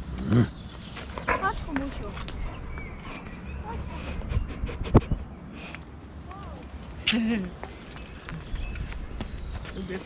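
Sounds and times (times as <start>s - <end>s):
shuffling paws on paving: 0.0s - 10.0s
chain leash clinking: 6.4s - 8.1s.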